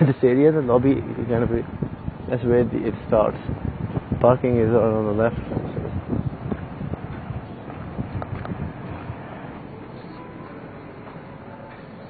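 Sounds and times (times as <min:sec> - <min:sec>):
wind noise on microphone: 0:00.0 - 0:10.2.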